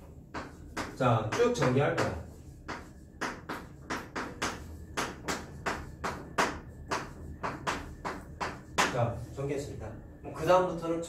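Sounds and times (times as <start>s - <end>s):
chalk tapping and scraping: 0.0s - 9.4s.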